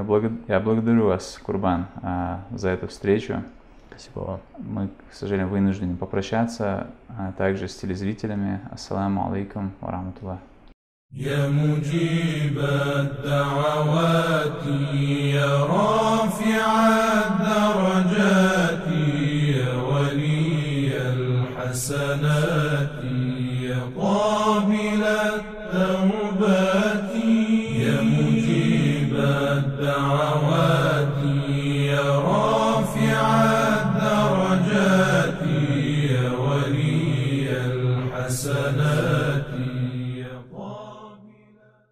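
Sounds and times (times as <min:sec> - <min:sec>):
person chanting: 0:11.2 - 0:41.6
low sustained drone: 0:25.2 - 0:40.0.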